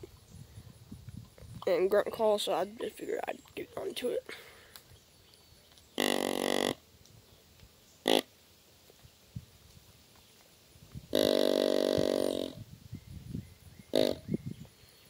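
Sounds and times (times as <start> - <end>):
deer grunt call: 6.0 - 6.8, 8.0 - 8.3, 11.1 - 12.6, 13.9 - 14.3.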